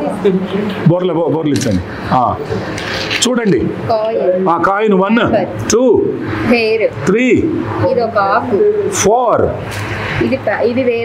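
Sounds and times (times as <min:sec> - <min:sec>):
voices talking over each other: 0:00.0 - 0:11.0.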